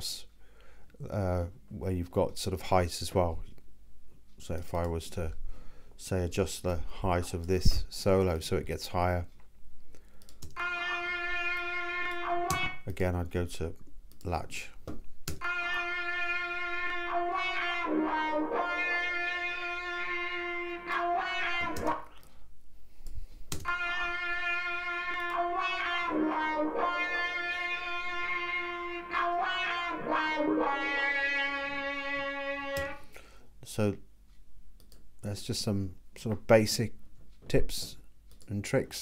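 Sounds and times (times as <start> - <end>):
distorted electric guitar solo: 10.6 - 12.8, 15.4 - 22.2, 23.6 - 33.0.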